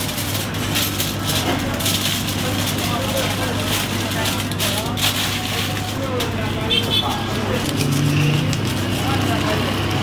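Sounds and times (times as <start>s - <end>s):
knife sawing through foil: 0.0s - 9.5s
background voices talking: 0.0s - 10.0s.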